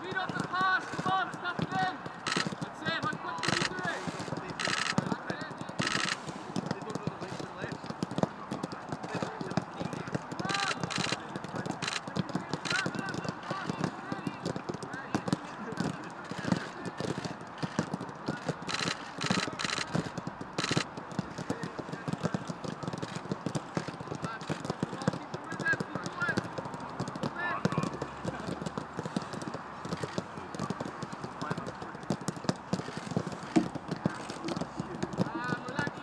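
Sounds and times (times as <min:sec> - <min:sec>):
footsteps on grass: 0:00.0 - 0:07.7, 0:32.6 - 0:35.2
footballs being kicked: 0:00.0 - 0:36.0
players calling out: 0:00.1 - 0:36.0.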